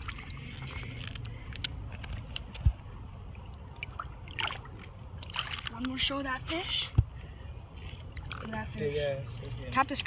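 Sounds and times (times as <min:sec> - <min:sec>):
shallow water splashing and dripping: 0:00.0 - 0:09.9.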